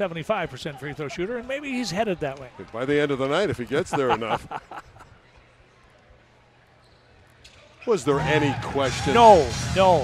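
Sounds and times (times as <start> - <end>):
low crowd and room noise: 0.0 - 8.8.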